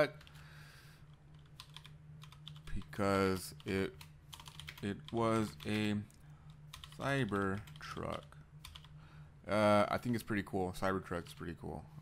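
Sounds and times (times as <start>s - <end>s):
faint low hum: 0.0s - 12.0s
computer keyboard typing: 1.1s - 6.0s, 6.7s - 8.9s.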